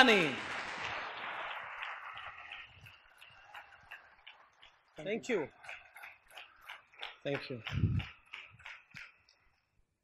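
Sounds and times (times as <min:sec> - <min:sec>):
audience applause: 0:00.0 - 0:09.6.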